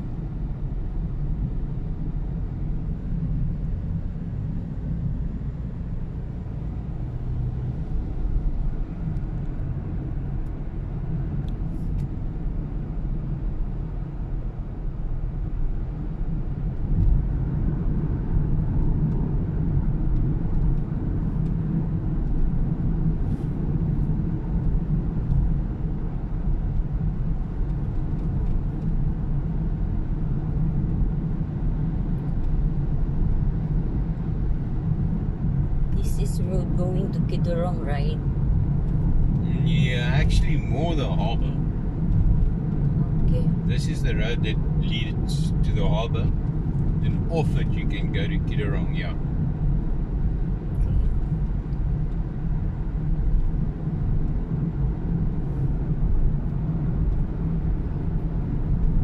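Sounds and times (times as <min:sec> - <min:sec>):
car road noise rumble: 0:00.0 - 0:59.0.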